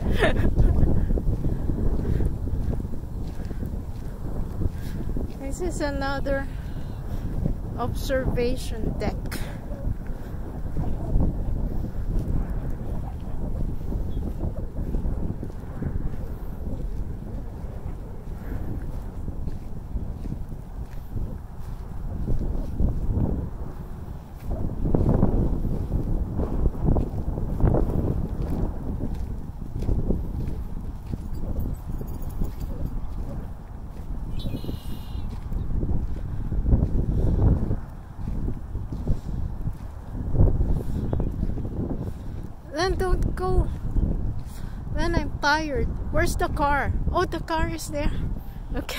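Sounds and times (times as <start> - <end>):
footsteps on gravel: 0.0 - 8.0, 9.8 - 44.5
wind buffeting microphone: 0.0 - 48.9.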